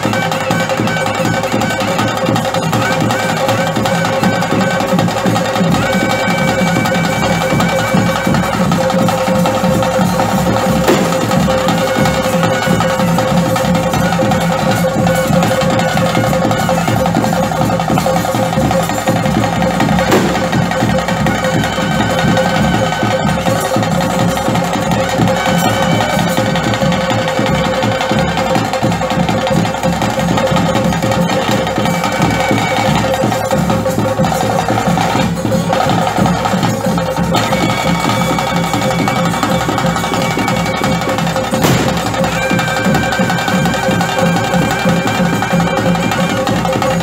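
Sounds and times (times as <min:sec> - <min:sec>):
fast dense drumming: 0:00.0 - 0:47.0.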